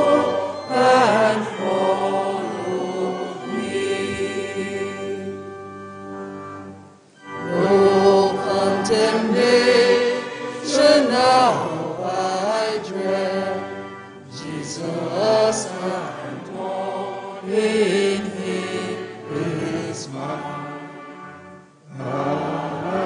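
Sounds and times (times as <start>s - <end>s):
sung chant: 0.0s - 5.5s, 7.4s - 23.0s
sustained organ chords: 0.0s - 23.0s.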